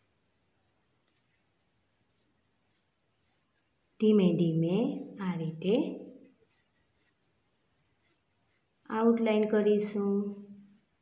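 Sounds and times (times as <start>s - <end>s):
pen scratching on paper: 2.0s - 3.8s, 4.4s - 11.0s.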